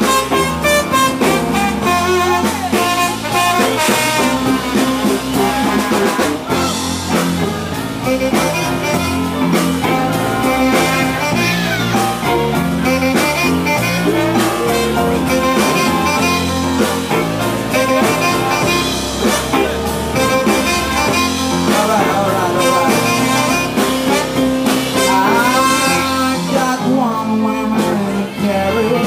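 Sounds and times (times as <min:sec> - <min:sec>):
rhythm and blues band playing: 0:00.0 - 0:29.0.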